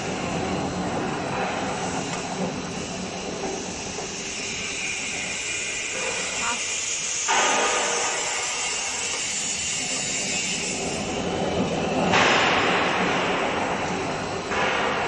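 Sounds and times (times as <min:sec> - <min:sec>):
hydraulic machine running: 0:00.0 - 0:15.0.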